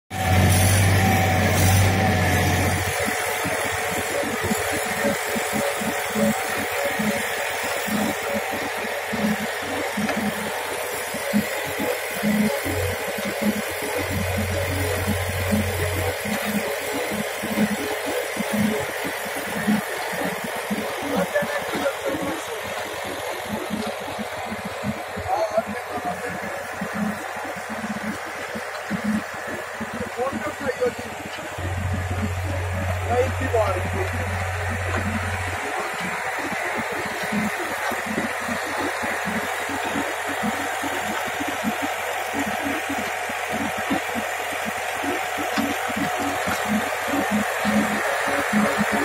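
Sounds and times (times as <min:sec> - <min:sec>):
clay mixer auger pushing clay: 0:00.1 - 0:49.0
tractor engine running under load: 0:00.1 - 0:49.0.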